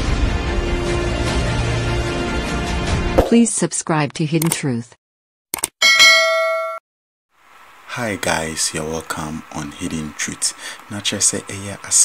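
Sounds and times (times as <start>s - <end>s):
bright bell ding: 5.8s - 6.8s.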